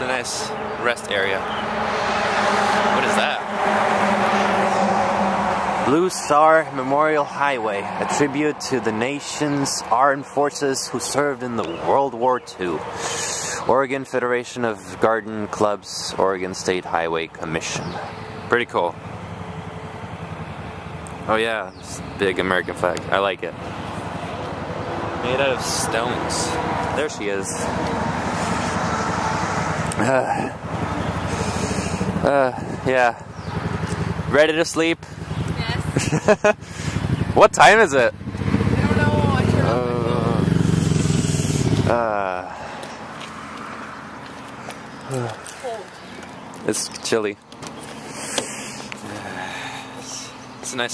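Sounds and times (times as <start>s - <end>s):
vehicle engine humming: 0.0s - 50.9s
brief voices: 45.0s - 46.0s.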